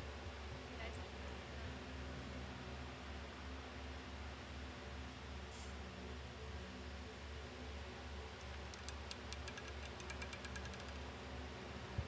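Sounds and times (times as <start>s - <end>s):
roulette ball rattling over frets: 8.5s - 11.0s.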